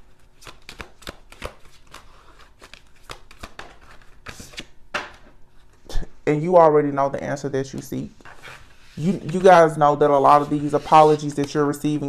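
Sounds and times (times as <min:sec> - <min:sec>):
cards being shuffled: 0:00.2 - 0:05.7, 0:07.7 - 0:12.0.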